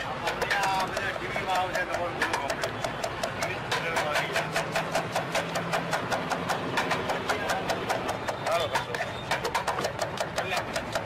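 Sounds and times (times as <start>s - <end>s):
knife chopping on wooden board: 0.0s - 11.0s.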